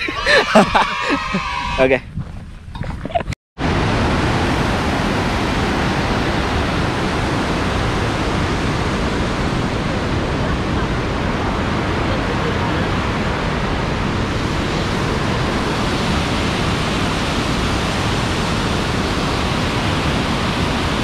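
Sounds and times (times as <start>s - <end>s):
waterfall rushing: 3.6s - 21.0s.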